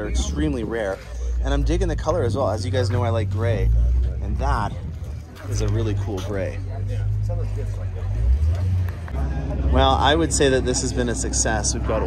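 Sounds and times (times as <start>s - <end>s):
car engine running: 0.0s - 12.0s
faint voices of people: 0.0s - 12.0s.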